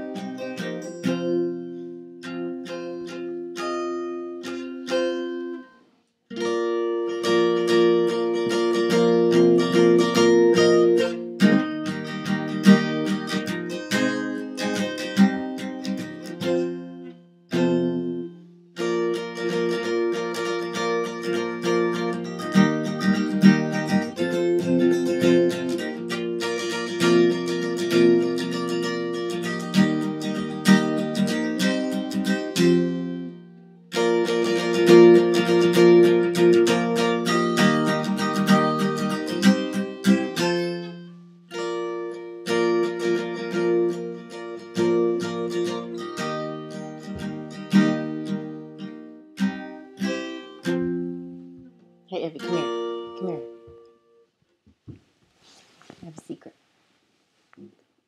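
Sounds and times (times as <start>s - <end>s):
acoustic guitar strumming chords: 0.0s - 54.3s.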